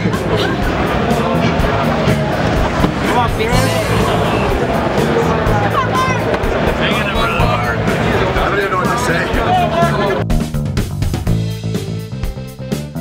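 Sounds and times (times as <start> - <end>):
crowd chatter and calls: 0.0 - 10.3
loud music with steady beat: 3.4 - 5.4.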